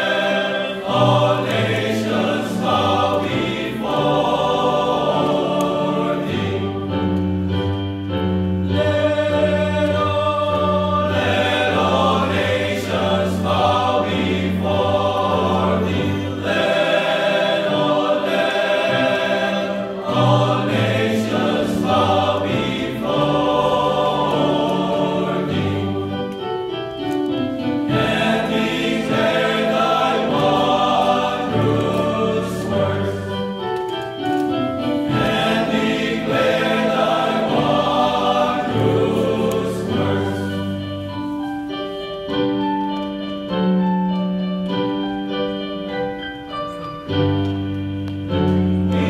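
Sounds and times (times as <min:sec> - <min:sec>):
male choir singing harmony: 0:00.0 - 0:34.0, 0:34.8 - 0:41.6, 0:48.5 - 0:49.0.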